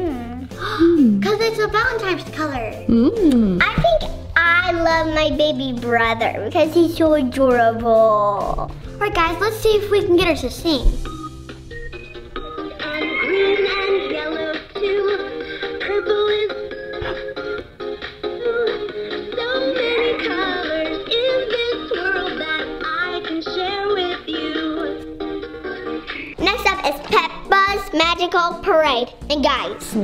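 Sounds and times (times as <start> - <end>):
backing tune: 2.9 - 3.7
synthetic sing-song toy voice: 18.6 - 24.9.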